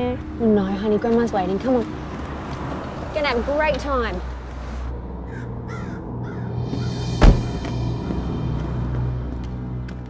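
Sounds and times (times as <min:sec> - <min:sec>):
low musical drone: 0:04.3 - 0:10.0
crows cawing: 0:05.2 - 0:08.3
loud boom: 0:06.8 - 0:07.8.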